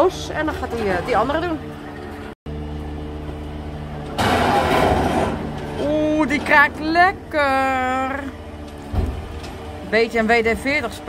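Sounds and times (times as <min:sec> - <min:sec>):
crane creaking: 0:00.0 - 0:11.0
diesel engine running: 0:00.0 - 0:11.0.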